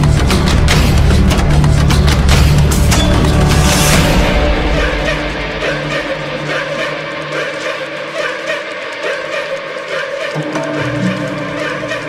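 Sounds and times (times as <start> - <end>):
low bass: 0.0 - 6.6
instrumental music sustained tones: 0.0 - 12.0.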